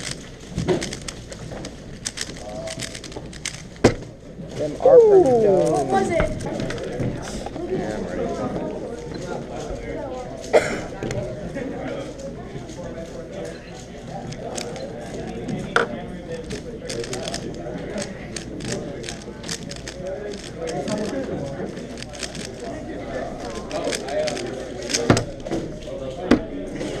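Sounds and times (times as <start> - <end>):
puzzle cube plastic clicking: 0.0 - 3.9, 16.4 - 22.8, 23.4 - 25.4
crowd chatter: 0.0 - 27.0.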